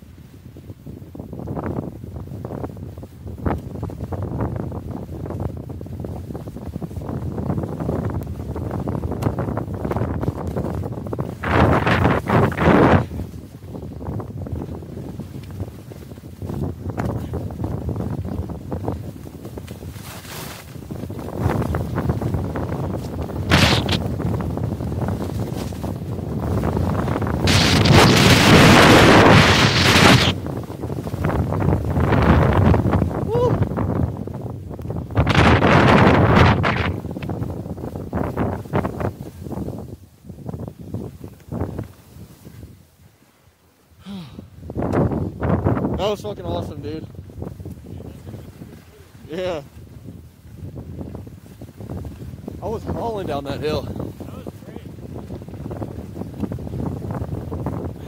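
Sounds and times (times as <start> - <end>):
wind buffeting microphone: 0.0 - 43.0, 44.0 - 58.0
skis scraping on snow: 6.0 - 32.8.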